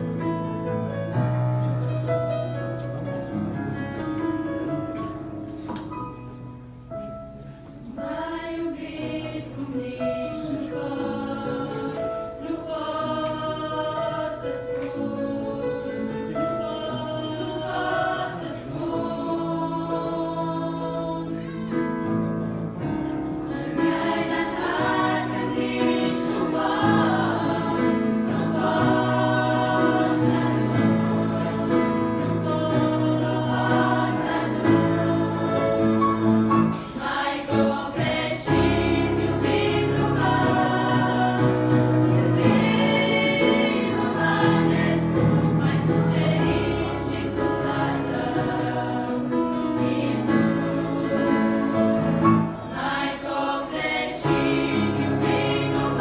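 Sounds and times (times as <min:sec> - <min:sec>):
choir singing: 0:07.7 - 0:56.0.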